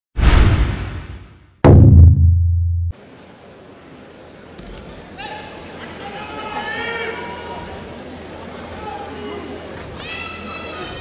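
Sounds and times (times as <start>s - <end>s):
impact ringing as low boom: 0.2s - 3.0s
whoosh: 0.2s - 3.0s.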